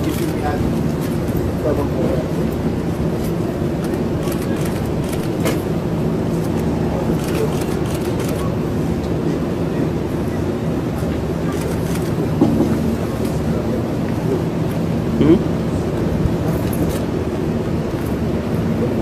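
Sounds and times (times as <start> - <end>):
engine rumble and hum: 0.0 - 19.0.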